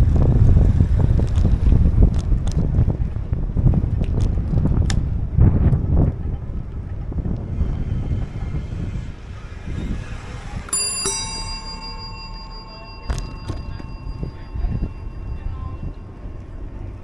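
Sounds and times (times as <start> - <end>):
wind buffeting microphone: 0.0 - 17.0
bicycle bell ringing: 10.7 - 17.0.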